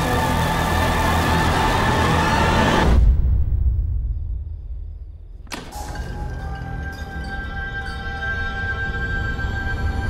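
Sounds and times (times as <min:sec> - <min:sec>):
tense sustained music: 0:00.0 - 0:10.0.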